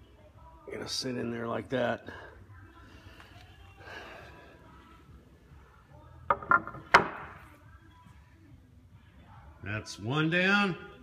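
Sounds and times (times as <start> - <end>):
sharp wooden knocks: 6.3 - 7.4.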